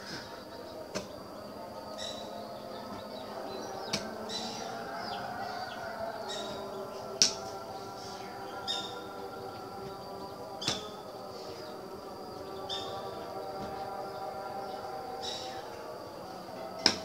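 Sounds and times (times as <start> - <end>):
steady background drone: 0.0 - 17.0.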